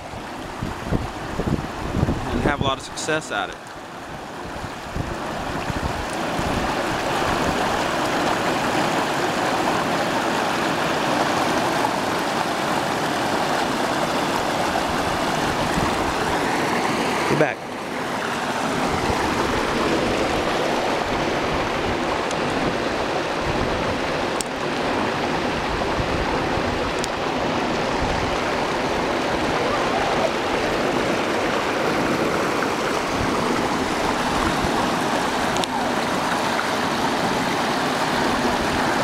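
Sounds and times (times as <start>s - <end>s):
water rushing over rocks: 0.0s - 39.0s.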